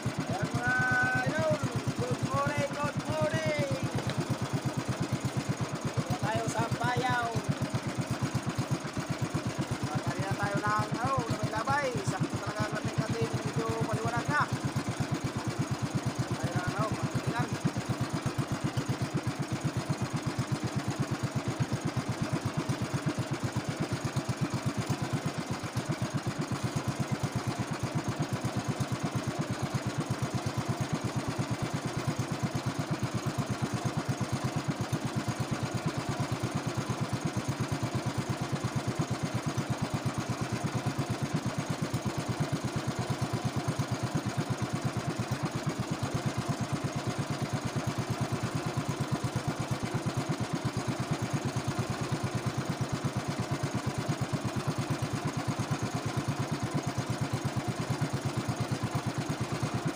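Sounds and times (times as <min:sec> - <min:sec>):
boat small engine running: 0:00.0 - 0:59.9.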